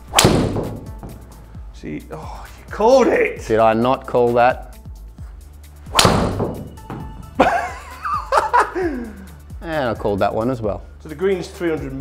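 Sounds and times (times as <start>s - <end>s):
background music: 0.0s - 12.0s
golf driver striking ball: 0.1s - 0.9s, 5.9s - 6.8s.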